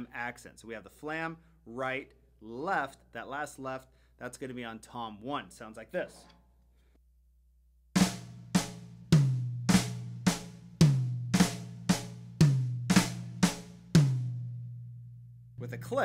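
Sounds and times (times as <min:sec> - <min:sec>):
snare drum flams: 0:08.0 - 0:14.3
rack tom strokes: 0:08.0 - 0:16.0.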